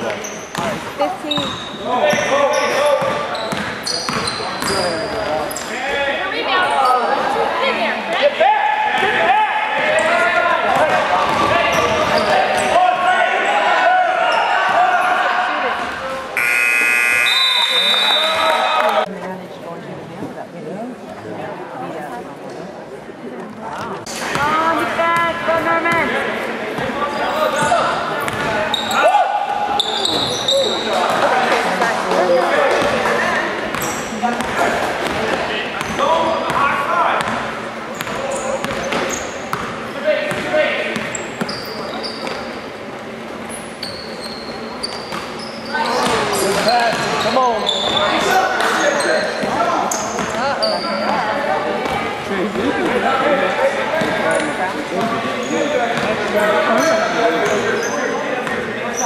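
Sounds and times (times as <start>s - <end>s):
sneakers squeaking: 0.0s - 7.4s, 9.8s - 12.8s, 13.4s - 19.0s, 23.7s - 53.2s, 53.9s - 59.0s
spectators' voices: 0.0s - 59.0s.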